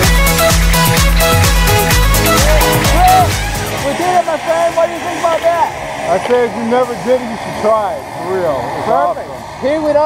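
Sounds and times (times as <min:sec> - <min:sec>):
man talking: 0:02.4 - 0:10.0.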